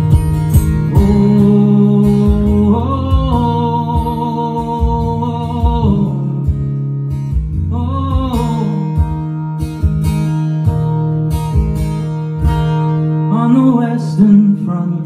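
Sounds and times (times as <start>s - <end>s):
acoustic guitar strummed: 0.0s - 15.0s
man singing: 0.7s - 6.8s, 7.6s - 9.2s, 13.3s - 15.0s.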